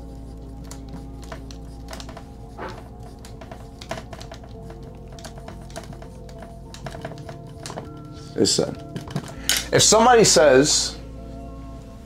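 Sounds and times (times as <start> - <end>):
marker strokes on whiteboard: 0.0 - 9.3
quiet background music: 0.0 - 12.0.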